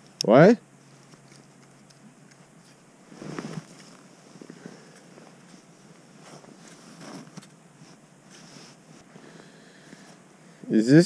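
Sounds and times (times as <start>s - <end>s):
clothing and gear rustling: 0.9s - 10.2s
faint scuffs: 2.6s - 9.1s.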